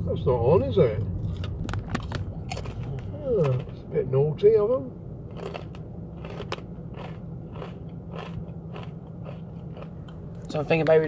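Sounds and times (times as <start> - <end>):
car engine hum: 0.0 - 11.0
soft crunching: 5.3 - 10.5.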